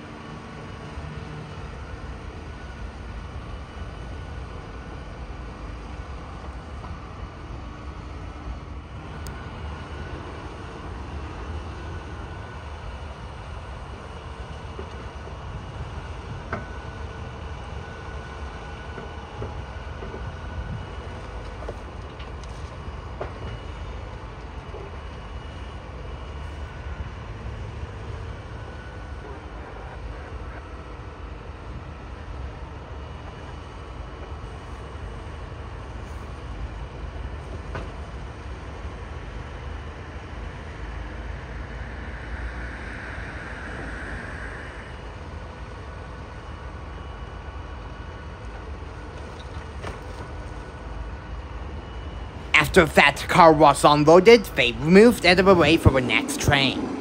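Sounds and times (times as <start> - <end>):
diesel engine rumbling: 37.8 - 47.0.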